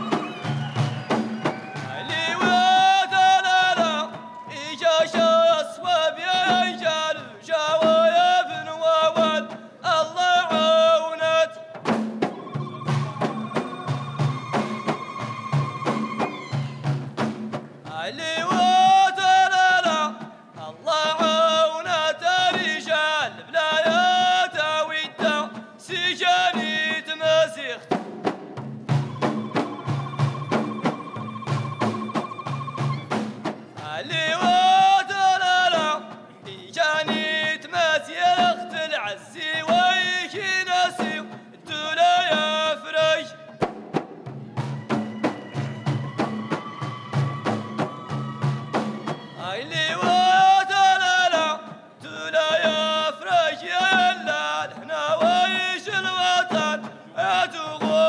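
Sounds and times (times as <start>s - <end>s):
male chorus singing in unison: 0.0s - 11.2s
frame drums beating: 0.0s - 58.0s
man singing solo: 1.7s - 11.7s, 49.4s - 58.0s.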